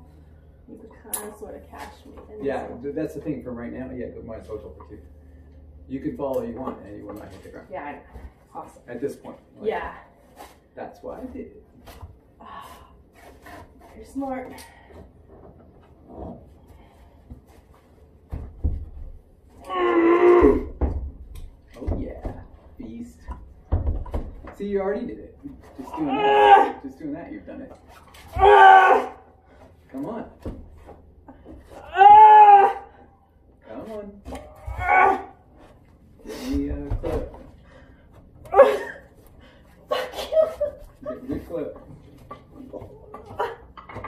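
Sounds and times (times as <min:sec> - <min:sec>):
body and rope thumps: 0:18.2 - 0:19.3
person crying out with effort: 0:19.6 - 0:20.7, 0:28.3 - 0:29.2, 0:31.8 - 0:33.0, 0:38.5 - 0:39.0.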